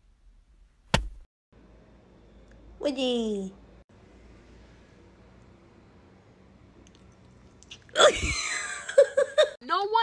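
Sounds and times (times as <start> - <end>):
sharp knock: 0.9 - 1.3.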